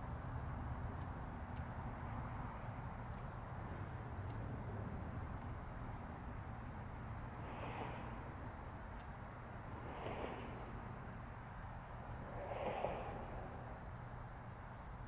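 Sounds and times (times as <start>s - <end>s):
steady low rumble: 0.0s - 15.0s
person breathing softly: 7.3s - 8.8s, 9.6s - 14.0s.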